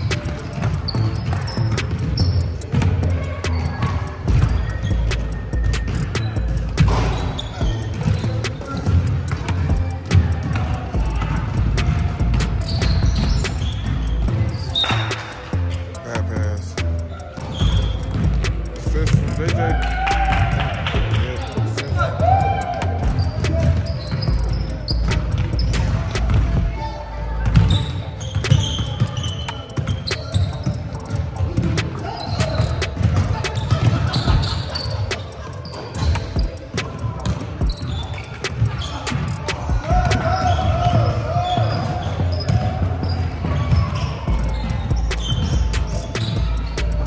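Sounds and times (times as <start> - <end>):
voices calling out: 0.0 - 47.0
basketball bouncing on hardwood: 0.2 - 15.3, 17.2 - 21.2, 23.0 - 26.7.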